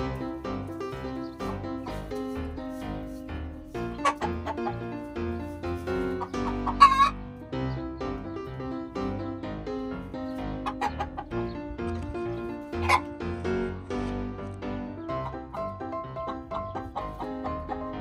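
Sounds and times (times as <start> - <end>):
chickens clucking: 0.0 - 13.8, 14.9 - 18.0
piano music: 0.0 - 18.0
chicken squawks: 3.7 - 5.0, 5.8 - 7.2, 10.6 - 11.4, 12.8 - 13.1.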